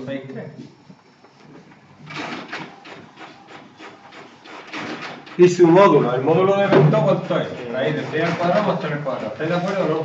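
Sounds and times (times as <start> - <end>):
short scratching strokes: 1.4 - 10.0.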